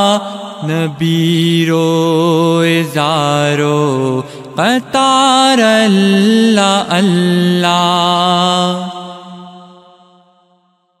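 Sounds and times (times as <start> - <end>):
chant-like vocal drone: 0.0 - 10.3.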